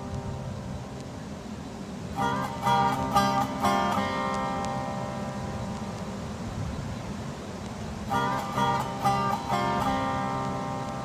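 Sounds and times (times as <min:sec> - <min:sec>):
guitar plucked notes and chord: 0:00.0 - 0:01.1, 0:02.1 - 0:06.2, 0:08.0 - 0:11.0.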